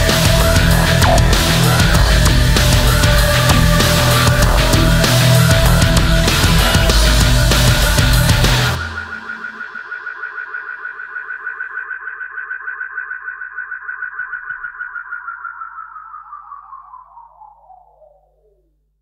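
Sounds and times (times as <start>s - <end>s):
dark electronic music: 0.0s - 18.7s
fast-pulsing electronic tone: 0.0s - 18.8s
faint low drone: 0.0s - 19.0s.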